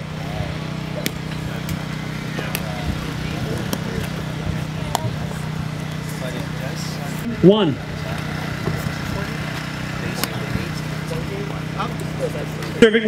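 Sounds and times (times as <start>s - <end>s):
faint voices: 0.0s - 13.0s
steady low hum: 0.0s - 13.0s.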